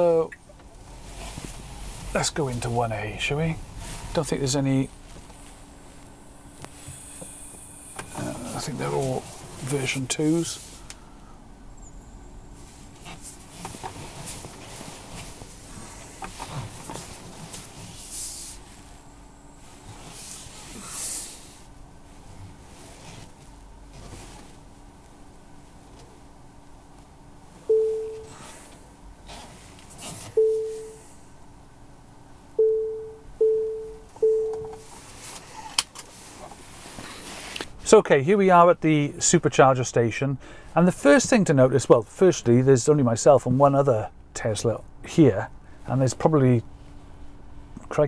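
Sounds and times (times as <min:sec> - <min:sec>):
park-assist beeps: 0:27.7 - 0:28.4, 0:30.3 - 0:31.0, 0:32.6 - 0:34.9.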